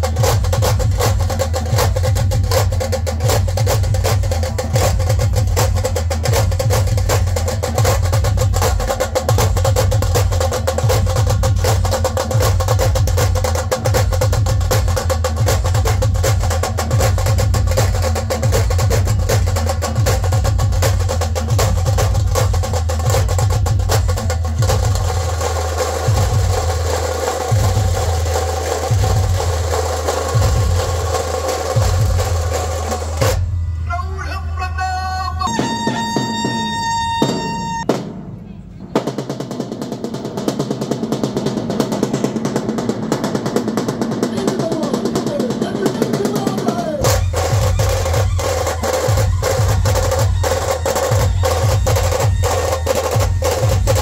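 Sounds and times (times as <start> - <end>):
fast high drum roll: 0.0 - 33.6, 35.5 - 54.0
deep booming drum beats: 0.0 - 33.8, 35.5 - 54.0.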